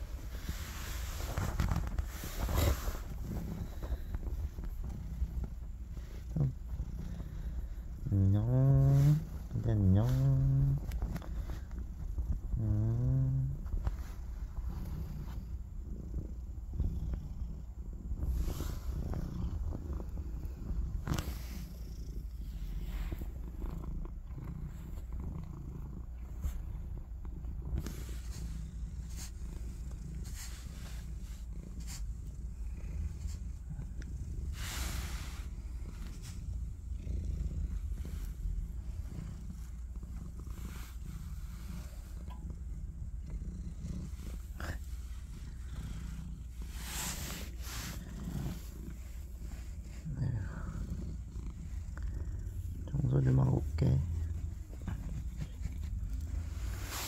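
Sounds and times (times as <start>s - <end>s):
rustles of handling: 0.0s - 6.7s, 27.7s - 32.3s, 46.0s - 50.1s, 53.2s - 57.0s
cat purring: 0.0s - 57.0s.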